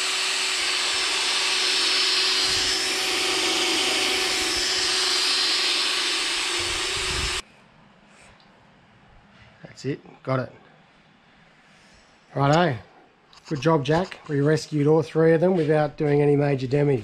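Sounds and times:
cordless drill boring into metal: 0.0 - 7.4.

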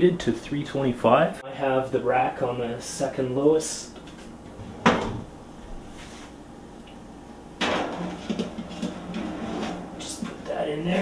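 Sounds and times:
pan knocking against metal: 7.6 - 10.5
pan scraping on oven rack: 7.6 - 11.0.

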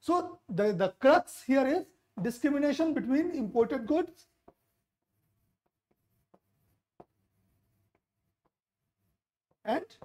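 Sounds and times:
stylus tapping touchscreen: 4.1 - 10.0.

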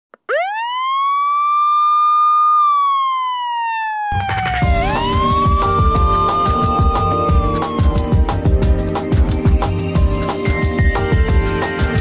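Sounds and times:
emergency vehicle siren wailing: 0.2 - 12.0.

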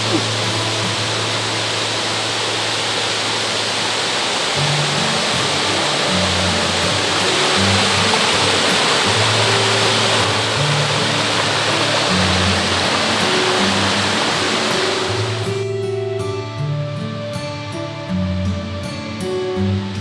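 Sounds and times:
mountain stream over rocks: 0.0 - 15.6
background music with bass: 4.6 - 20.0.

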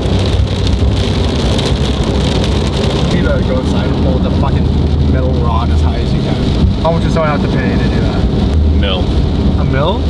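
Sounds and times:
rain ticking on car: 0.0 - 10.0
road rumble and tyre noise: 0.0 - 10.0.

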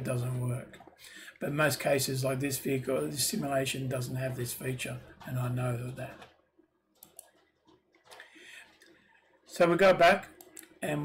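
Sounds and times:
faint computer mouse clicks: 7.0 - 8.3.

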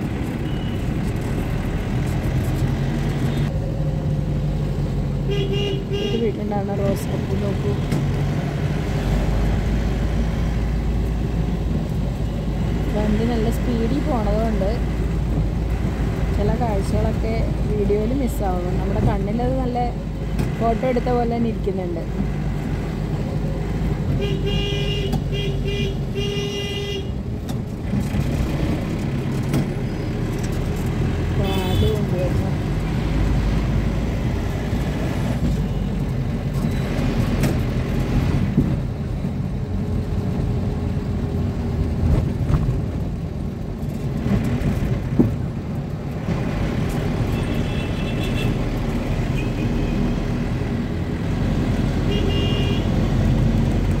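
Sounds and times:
vehicle engine and road noise: 0.0 - 54.0
car horn honks: 5.3 - 6.3, 24.2 - 27.1, 47.4 - 48.6, 52.1 - 53.0.

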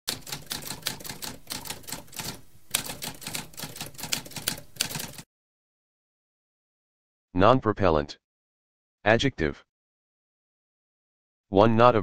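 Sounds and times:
typewriter typing: 0.1 - 5.2.

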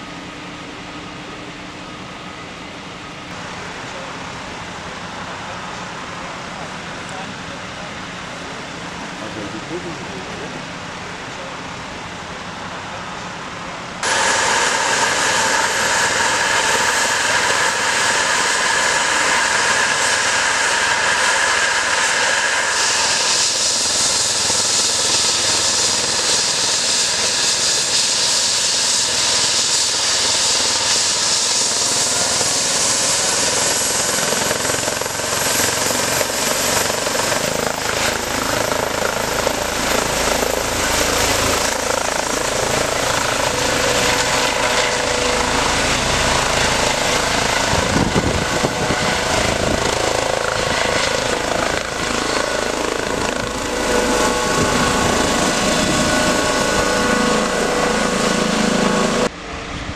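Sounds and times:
high turbine whine: 0.0 - 59.9
helicopter rotor turning: 14.0 - 59.3.

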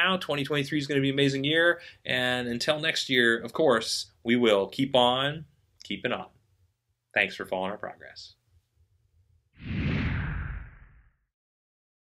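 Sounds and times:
whoosh: 9.6 - 11.2.

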